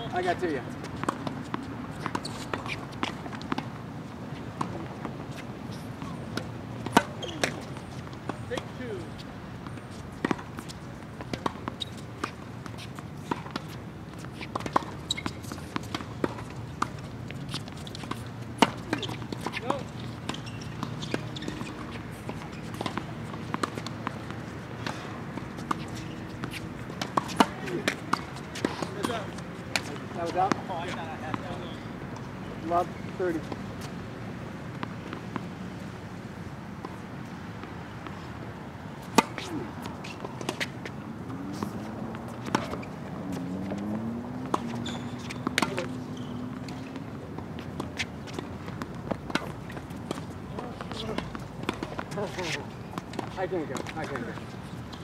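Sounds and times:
tennis balls bouncing: 0.1s - 55.0s.

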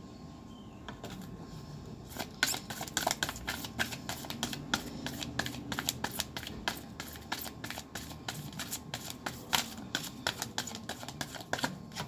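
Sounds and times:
cards being shuffled: 2.1s - 12.0s.

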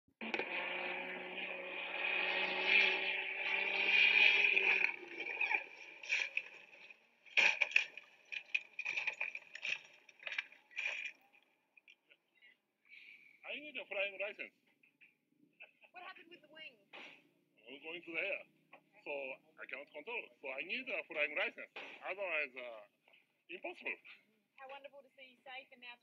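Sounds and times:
race car engine: 0.1s - 11.3s
car crash scrapes and knocks: 4.0s - 11.1s.

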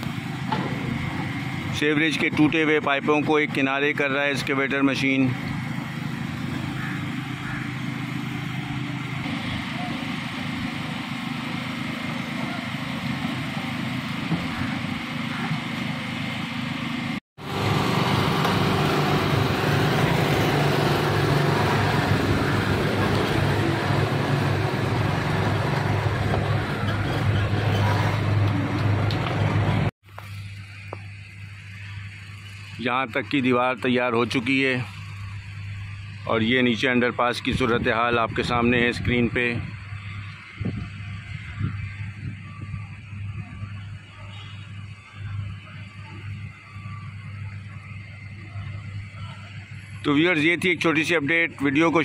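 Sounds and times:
excavator diesel engine running: 0.0s - 52.0s
street traffic: 0.0s - 52.0s.

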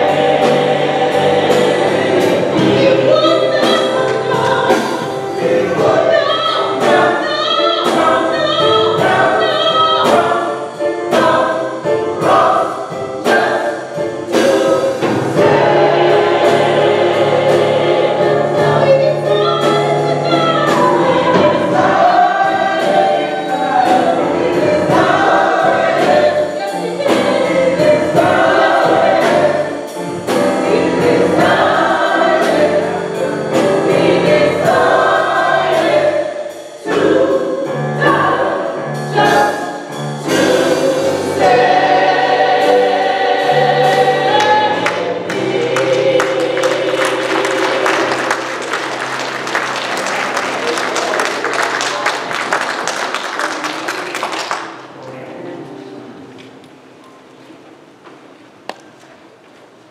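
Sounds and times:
gospel choir singing: 0.0s - 56.4s.

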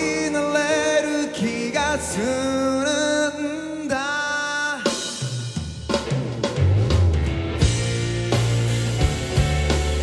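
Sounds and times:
drum kit hits: 5.0s - 10.0s
bass line: 6.8s - 10.0s.

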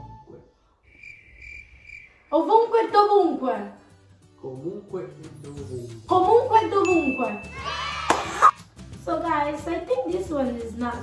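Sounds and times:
crickets chirping: 0.8s - 2.8s.

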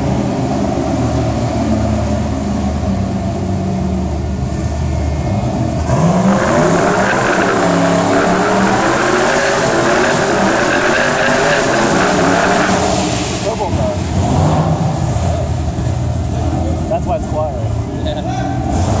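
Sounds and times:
race car engines idling: 0.0s - 19.0s
car engine revving hard: 5.4s - 15.4s.

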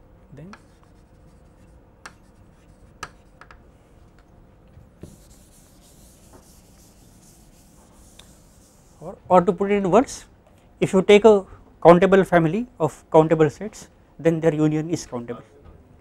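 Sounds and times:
chalk tapping and scratching: 0.4s - 3.6s, 5.0s - 9.0s
board duster rubbing chalkboard: 5.0s - 9.0s.

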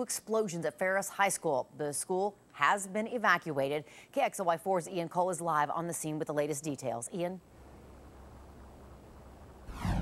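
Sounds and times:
faint low hum: 7.2s - 10.0s
low rumble: 9.4s - 10.0s
whoosh falling in pitch: 9.7s - 10.0s.

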